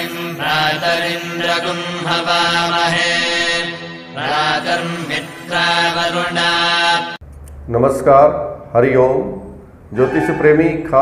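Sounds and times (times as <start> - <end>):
person chanting a mantra: 0.0 - 7.2.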